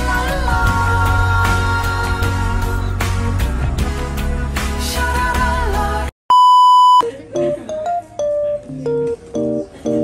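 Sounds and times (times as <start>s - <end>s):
background music: 0.0s - 6.1s
censor bleep tone: 6.3s - 7.0s.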